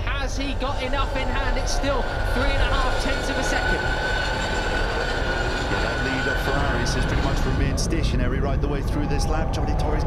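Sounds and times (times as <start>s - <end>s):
electric motorcycle whine: 0.0s - 10.0s.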